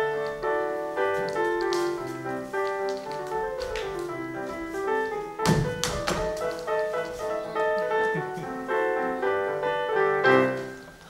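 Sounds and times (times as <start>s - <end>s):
piano melody: 0.0s - 11.0s
light taps: 1.2s - 4.1s.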